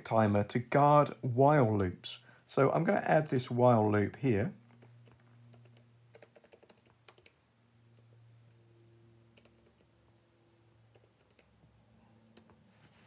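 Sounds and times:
faint low hum: 0:00.0 - 0:13.0
computer keyboard typing: 0:05.0 - 0:07.4, 0:09.3 - 0:10.0, 0:10.9 - 0:11.6.

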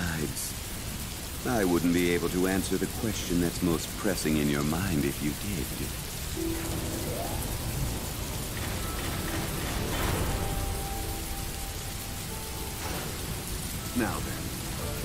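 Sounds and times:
rain falling: 0:00.0 - 0:15.0.

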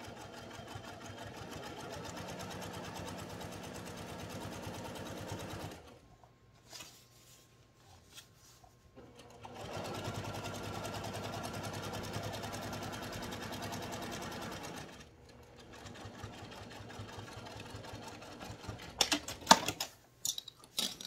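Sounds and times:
sewing machine stitching: 0:00.0 - 0:06.0, 0:09.0 - 0:19.5.

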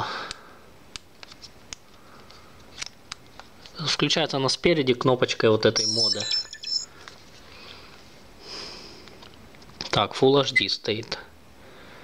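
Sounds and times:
high electronic beep: 0:05.7 - 0:06.9.

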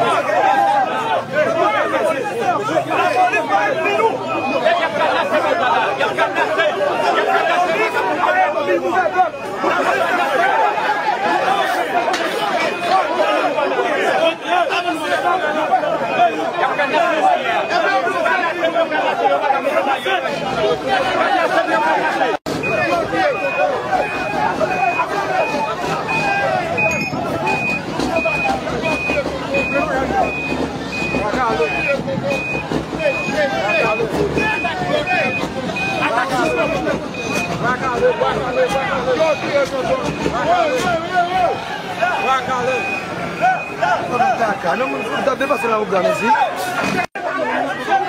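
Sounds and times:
truck reversing alarm beeping: 0:00.0 - 0:47.1
crowd talking: 0:00.0 - 0:48.0.

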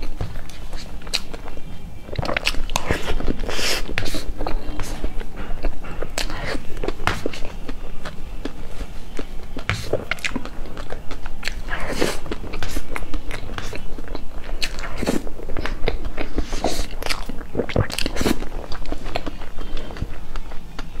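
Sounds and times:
wet chewing and lip smacks: 0:00.0 - 0:21.0.

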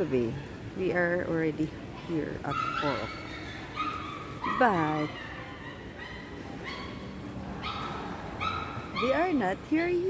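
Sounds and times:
terminal background noise: 0:00.0 - 0:10.0.

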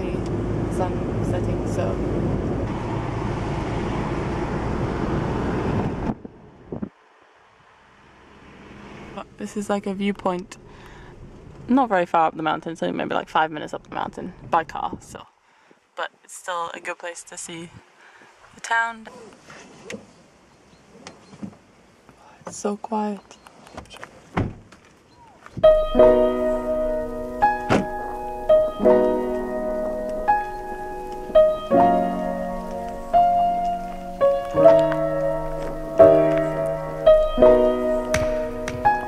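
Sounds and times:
car road and engine noise: 0:00.0 - 0:15.1, 0:15.8 - 0:39.0
wind buffeting on microphone: 0:00.2 - 0:07.0
car cabin hum: 0:25.6 - 0:39.0.

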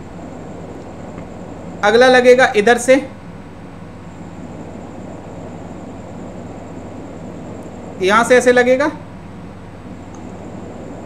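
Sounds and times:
background hum and hiss: 0:00.0 - 0:11.0
faint high-pitched whine: 0:00.0 - 0:11.0.

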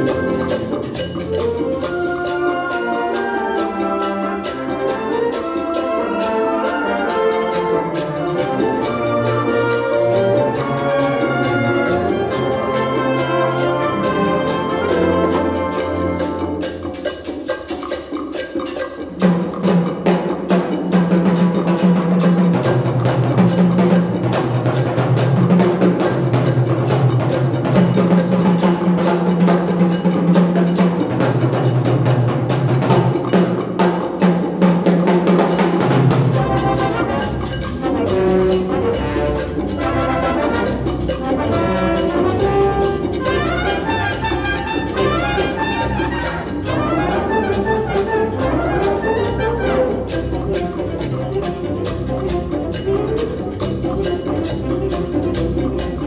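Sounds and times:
wind band playing a mambo: 0:00.0 - 0:56.0.

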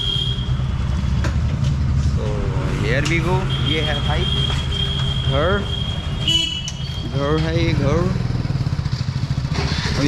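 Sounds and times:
motorbike engine idling: 0:03.4 - 0:10.0.

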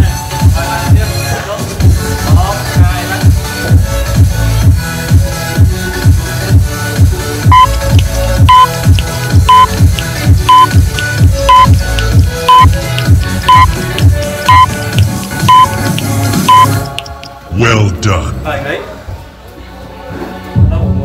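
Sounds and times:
electronic dance music: 0:07.4 - 0:16.9
short high beeps: 0:07.5 - 0:07.8, 0:08.5 - 0:08.8, 0:09.5 - 0:09.8, 0:10.5 - 0:10.7, 0:11.5 - 0:11.8, 0:12.5 - 0:12.7, 0:13.5 - 0:13.7, 0:14.5 - 0:14.7, 0:15.5 - 0:15.8, 0:16.5 - 0:16.8.

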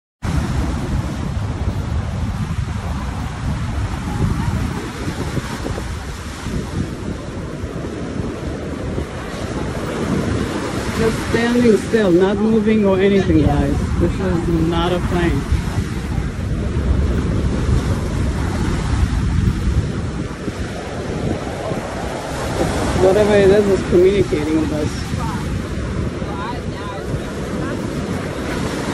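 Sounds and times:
surf breaking on beach: 0:00.2 - 0:28.9
wind buffeting microphone: 0:00.2 - 0:28.9.

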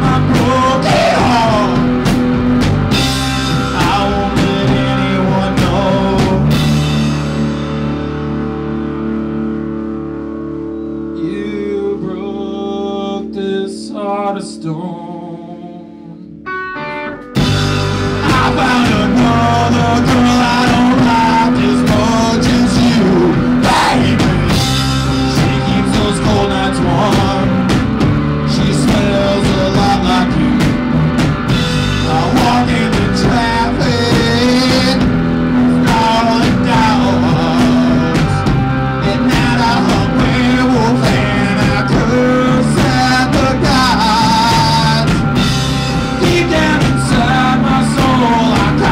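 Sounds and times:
rock band playing loud: 0:00.0 - 0:13.6, 0:16.4 - 0:48.9
bass guitar: 0:00.0 - 0:48.9
electric guitar: 0:00.0 - 0:48.9.

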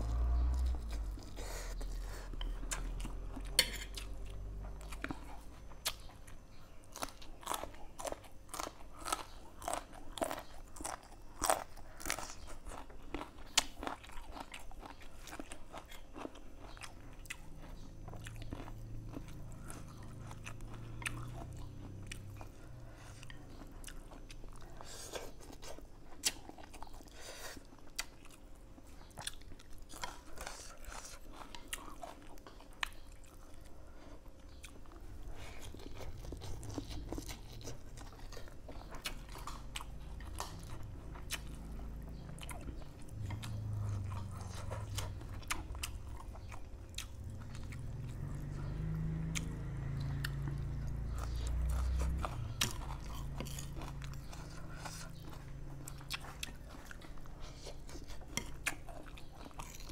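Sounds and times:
person chewing crunchy noodles: 0:00.0 - 0:59.9.

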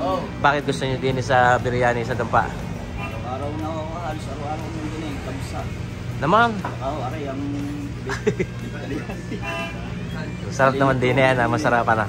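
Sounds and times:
vehicle horn toot: 0:02.9 - 0:03.6, 0:09.2 - 0:10.4.

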